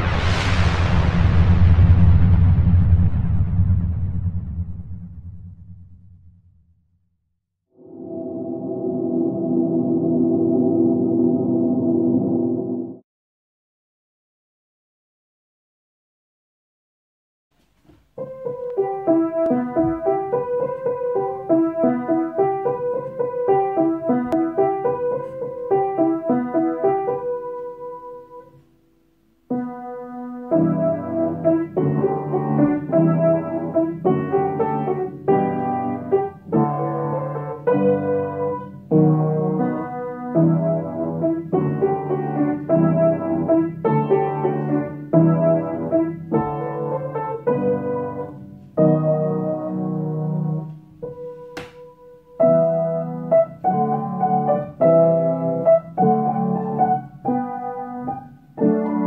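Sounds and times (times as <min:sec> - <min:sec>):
low piano chords: 0:07.8 - 0:13.0, 0:18.2 - 0:59.0
piano melody: 0:07.8 - 0:13.0, 0:18.2 - 0:59.0.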